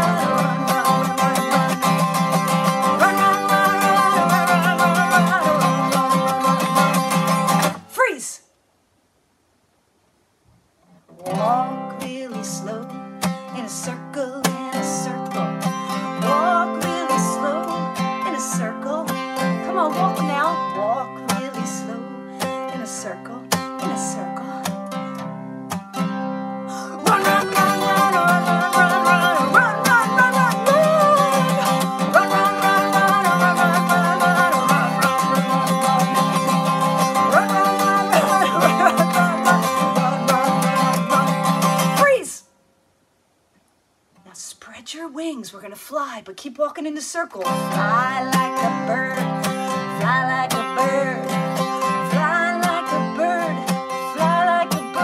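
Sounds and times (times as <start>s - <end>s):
acoustic guitar playing: 0.0s - 8.1s, 10.9s - 42.6s, 47.3s - 55.0s.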